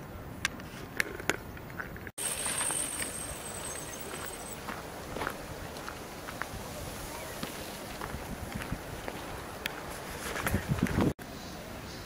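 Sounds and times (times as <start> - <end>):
steady outdoor hiss: 0.0 - 12.0
footsteps on dirt: 2.2 - 11.2.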